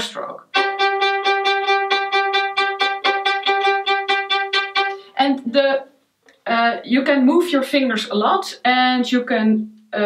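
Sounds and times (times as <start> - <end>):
violin spiccato strokes: 0.5 - 5.2.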